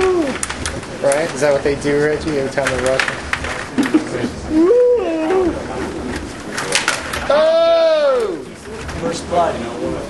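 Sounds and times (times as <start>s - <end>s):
hooted voice sound: 4.5s - 5.7s.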